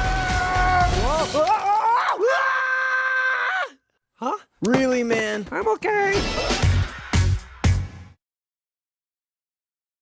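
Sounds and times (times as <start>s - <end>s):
cartoon character high-pitched scream: 0.0s - 3.8s.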